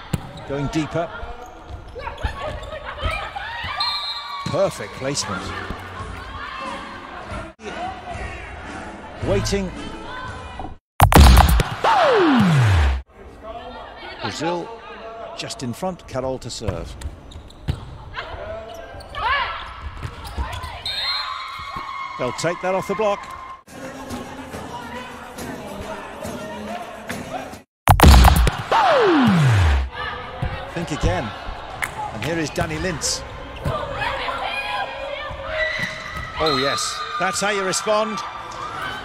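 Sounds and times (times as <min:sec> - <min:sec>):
ball hitting court: 0:11.0 - 0:12.8
volleyball being struck: 0:11.0 - 0:13.0, 0:27.9 - 0:29.9
shoes squeaking on court: 0:17.1 - 0:17.9, 0:20.0 - 0:20.9
shoe squeaks: 0:17.2 - 0:17.8.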